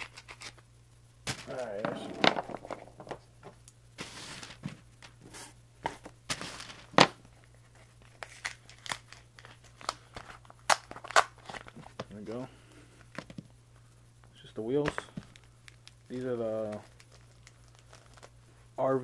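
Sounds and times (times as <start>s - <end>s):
paper mailer crinkling and tearing: 16.1s - 18.3s.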